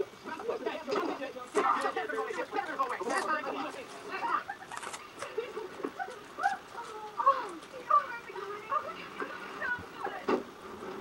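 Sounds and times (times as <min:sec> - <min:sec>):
faint tv voices: 0:00.0 - 0:11.0.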